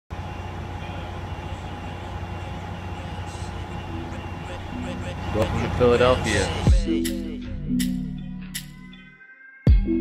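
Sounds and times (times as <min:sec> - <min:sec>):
faint steady whine: 0:00.1 - 0:06.7
idling vehicles rumbling: 0:00.1 - 0:06.8.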